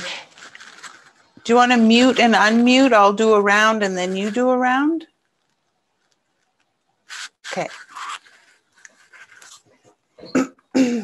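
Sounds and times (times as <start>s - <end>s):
faint breathy rustling: 0.0s - 1.4s.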